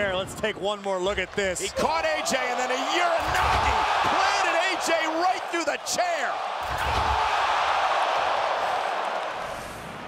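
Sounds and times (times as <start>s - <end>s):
arena crowd cheering: 0.1s - 10.0s.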